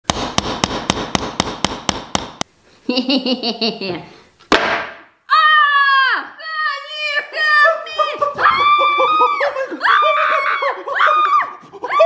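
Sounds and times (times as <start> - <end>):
hammer striking nail: 0.0 - 2.4.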